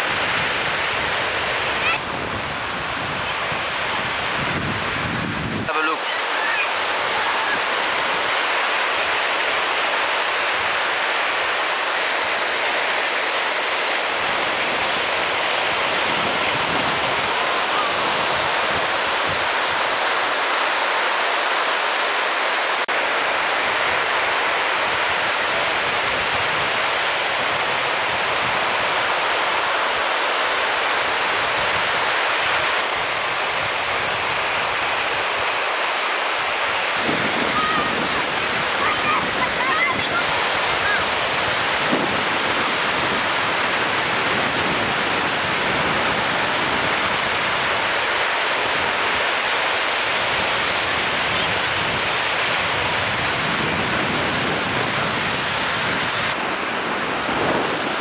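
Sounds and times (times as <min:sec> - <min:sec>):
low rumble of waves: 0:00.0 - 0:58.0
surf breaking on beach: 0:00.0 - 0:58.0.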